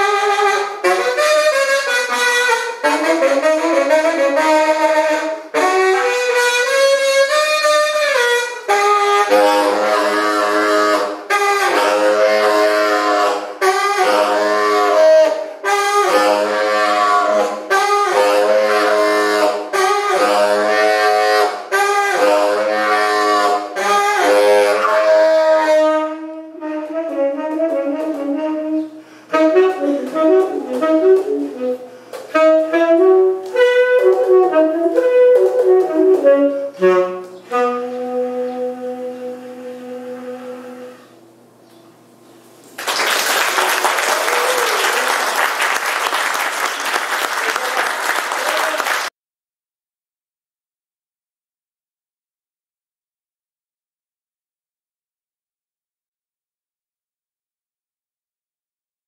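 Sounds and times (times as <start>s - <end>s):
tenor saxophone improvising: 0.0s - 41.8s
audience applause: 42.8s - 49.1s.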